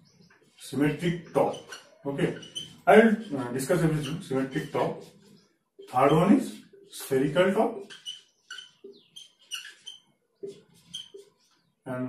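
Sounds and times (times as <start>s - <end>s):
marker squeaking on a whiteboard: 0.0s - 11.8s.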